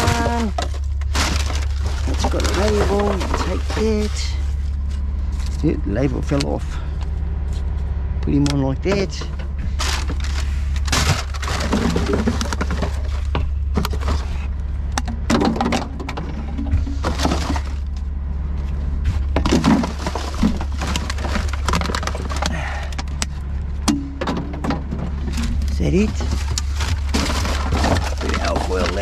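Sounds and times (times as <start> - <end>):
rummaging through recycling rubbish: 0.0 - 29.0
steady low hum: 0.0 - 29.0.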